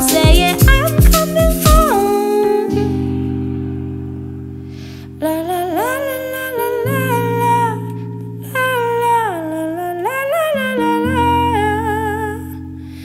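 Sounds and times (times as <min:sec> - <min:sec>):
woman singing wordless melody: 0:00.0 - 0:03.6, 0:05.1 - 0:12.9
sustained keyboard chords: 0:00.0 - 0:13.0.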